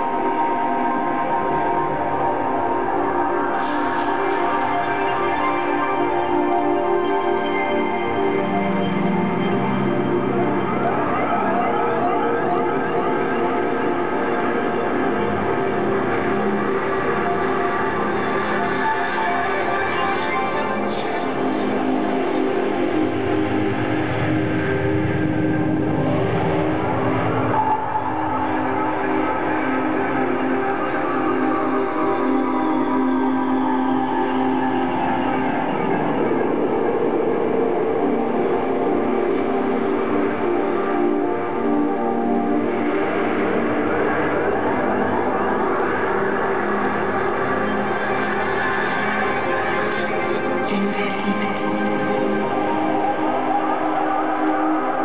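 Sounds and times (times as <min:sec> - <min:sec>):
sustained synthesizer chords: 0:00.0 - 0:55.0.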